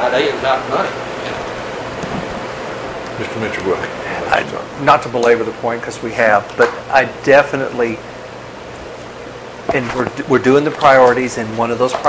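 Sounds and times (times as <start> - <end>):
room noise hiss: 0.0 - 12.0.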